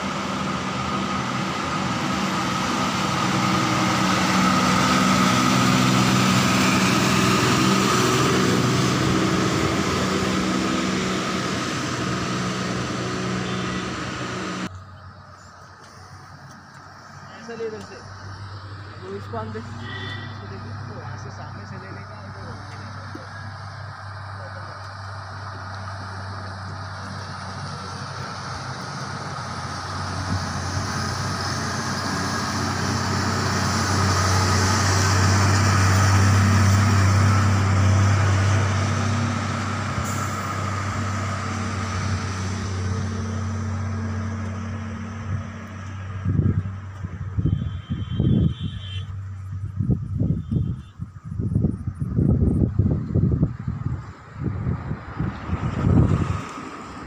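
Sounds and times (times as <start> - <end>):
truck diesel engine droning: 0.0 - 57.0
wind buffeting microphone: 45.3 - 57.0.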